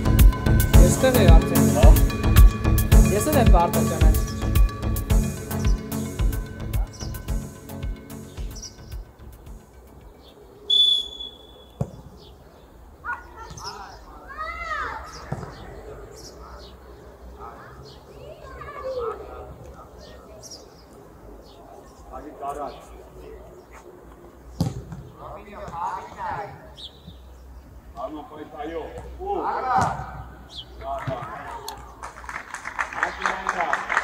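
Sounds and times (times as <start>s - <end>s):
referee's whistle blast: 10.7s - 11.8s
ball kicked thump: 15.3s - 15.6s, 24.6s - 25.0s.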